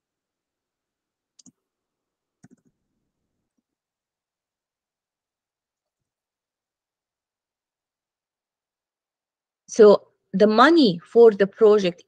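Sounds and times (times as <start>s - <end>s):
computer keyboard typing: 1.4s - 1.6s, 2.4s - 2.8s.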